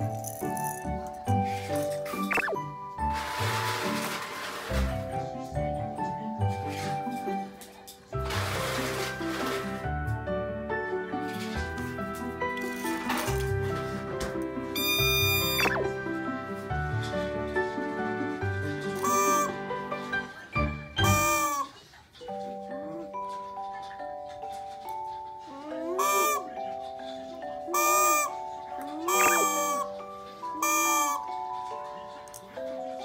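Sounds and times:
background music: 0.0s - 33.0s
plastic toy horn blown: 14.8s - 15.8s, 18.9s - 19.7s, 21.0s - 21.8s, 25.9s - 26.6s, 27.7s - 31.4s.

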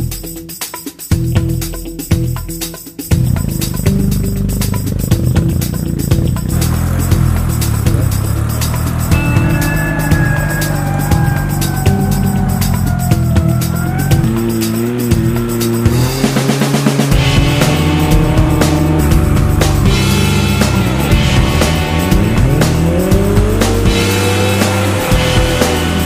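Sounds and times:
music with steady beat: 0.0s - 26.0s
car engine revving: 3.1s - 26.0s.

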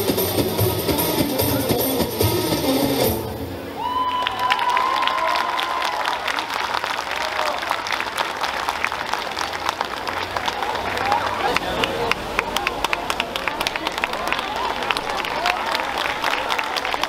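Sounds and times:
person cheering high call: 3.7s - 6.3s
audience applauding: 3.8s - 17.0s.

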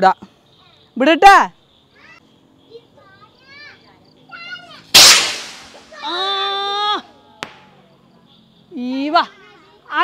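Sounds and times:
firework rocket whoosh: 4.9s - 6.1s
short crack: 5.0s - 6.1s.

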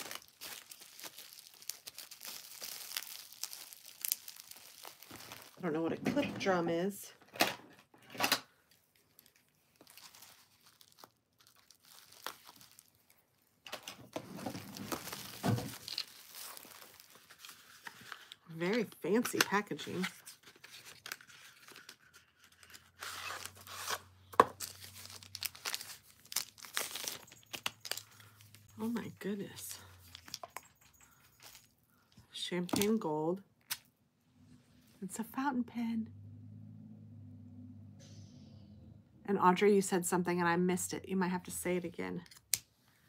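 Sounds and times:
packaging crinkling and tearing: 0.0s - 5.6s, 8.7s - 32.1s.

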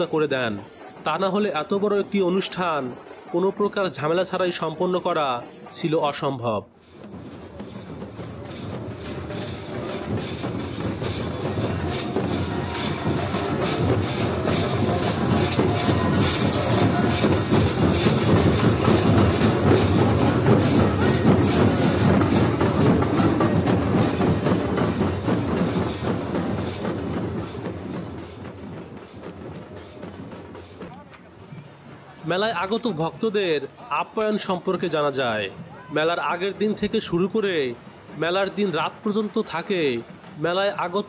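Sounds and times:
large barrel drums: 6.8s - 32.3s
brass hand cymbals clashing: 7.6s - 27.6s.

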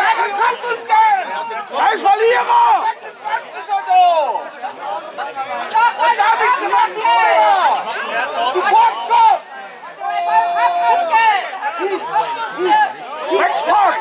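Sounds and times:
crowd talking and shouting: 0.0s - 14.0s.

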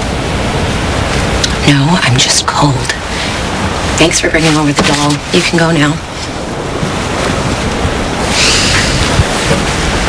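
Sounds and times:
waves rushing on shore: 0.0s - 10.0s.

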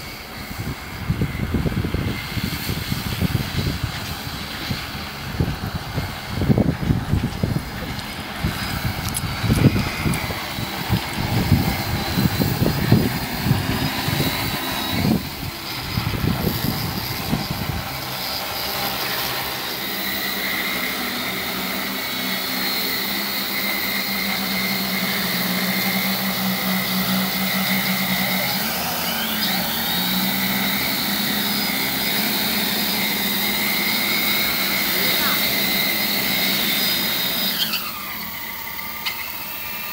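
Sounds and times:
rumbling wind noise: 0.0s - 18.4s
drone propellers buzzing: 0.0s - 39.9s.

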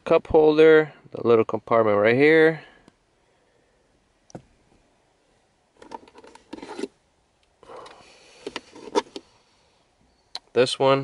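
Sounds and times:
insert scraping in plastic cup holder: 5.8s - 7.0s, 7.8s - 9.2s.

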